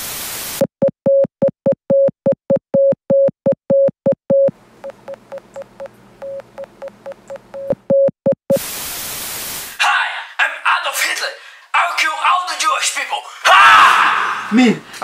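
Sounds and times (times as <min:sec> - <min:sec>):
tv static hiss: 0:08.5 - 0:09.9.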